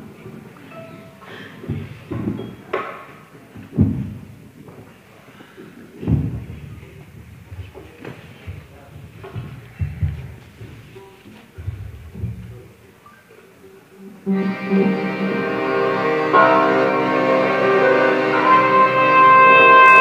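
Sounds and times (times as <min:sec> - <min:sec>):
dull thuds and knocks: 0:03.7 - 0:04.3
faint instrument notes: 0:14.2 - 0:20.0.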